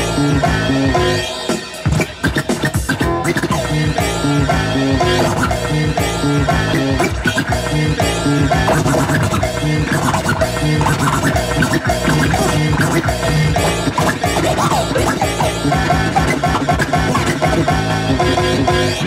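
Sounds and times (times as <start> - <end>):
music through sound system: 0.0 - 19.0
vinyl record scratching: 0.0 - 19.0.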